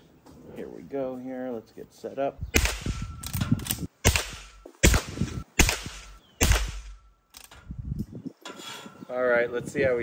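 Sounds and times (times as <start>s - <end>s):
rifle shots cracking: 2.6s - 3.0s, 4.0s - 7.0s.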